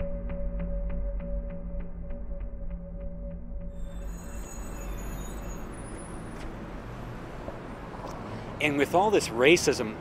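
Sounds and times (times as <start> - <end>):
traffic-like rumble and hiss: 4.5 - 10.0.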